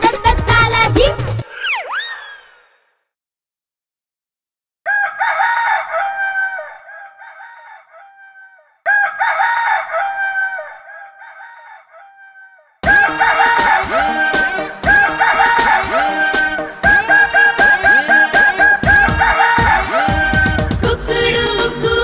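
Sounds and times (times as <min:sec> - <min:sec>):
upbeat children's song: 0:00.0 - 0:01.4, 0:12.8 - 0:22.0
rooster crowing: 0:04.8 - 0:20.6.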